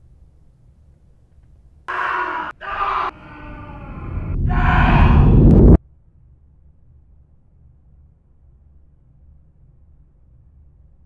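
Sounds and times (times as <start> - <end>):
man screaming: 1.9 - 5.5
deep rumble: 2.6 - 5.8.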